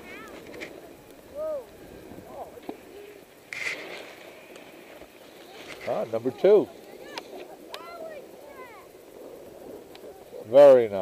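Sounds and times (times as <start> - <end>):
faint voices calling out: 0.0 - 11.0
outdoor murmur: 0.0 - 11.0
short hiss: 1.6 - 6.2.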